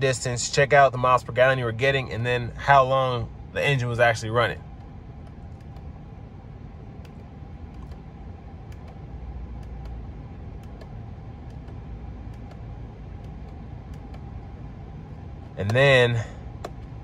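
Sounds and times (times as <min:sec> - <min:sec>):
car engine idling hum: 0:00.0 - 0:17.0
steering wheel button clicks: 0:04.8 - 0:05.9, 0:07.0 - 0:08.0, 0:08.7 - 0:14.4, 0:16.5 - 0:17.0.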